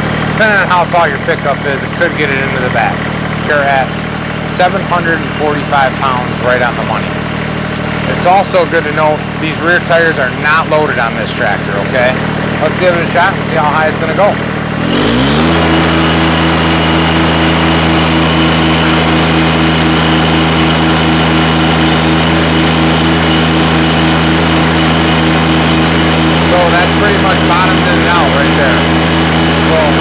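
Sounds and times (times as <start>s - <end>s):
diesel engine revving at high rpm: 0.0s - 30.0s.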